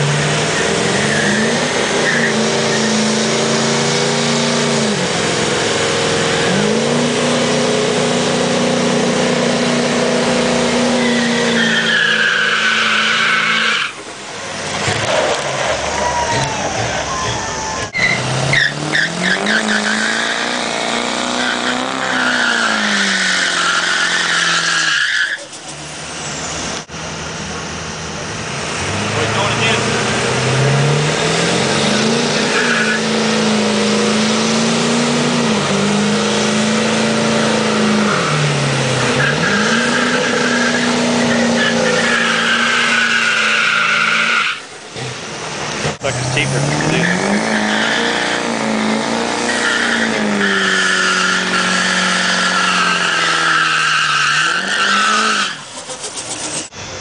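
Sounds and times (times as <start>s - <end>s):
tyre screeching: 0.0s - 26.8s, 28.9s - 45.2s, 45.8s - 56.8s
diesel engine revving: 0.0s - 57.0s.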